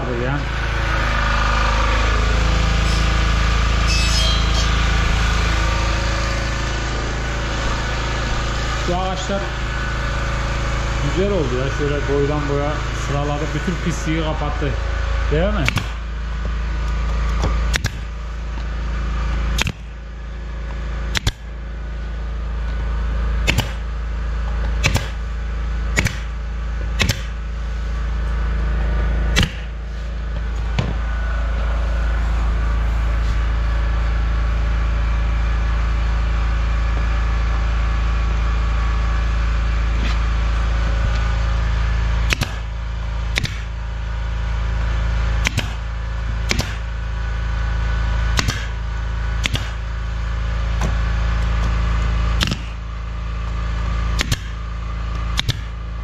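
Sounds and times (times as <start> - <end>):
low hum: 0.0 - 56.0
nail gun firing: 15.6 - 16.0, 17.7 - 18.1, 19.6 - 19.9, 21.1 - 21.5, 23.4 - 23.9, 24.8 - 25.2, 25.9 - 26.4, 27.0 - 27.4, 29.3 - 29.8, 42.3 - 42.7, 43.3 - 43.7, 45.4 - 46.9, 48.3 - 48.8, 49.4 - 49.8, 52.4 - 52.8, 54.1 - 54.6, 55.3 - 55.8.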